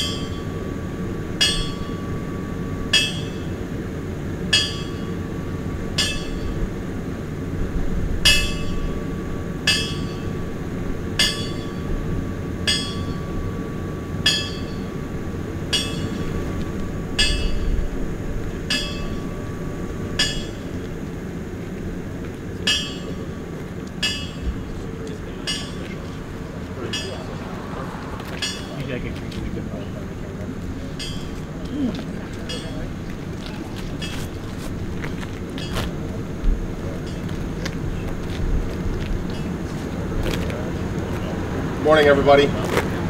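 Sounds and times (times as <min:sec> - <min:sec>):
steady low rumble: 0:00.0 - 0:41.8.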